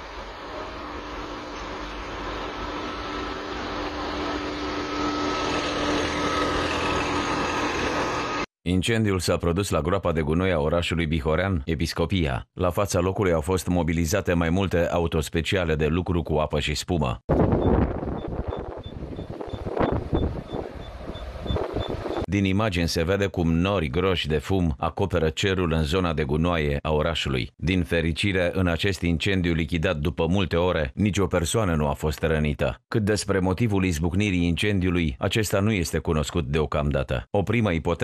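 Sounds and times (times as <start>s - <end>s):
engine drone: 0.0s - 8.5s
wind buffeting microphone: 17.3s - 22.3s.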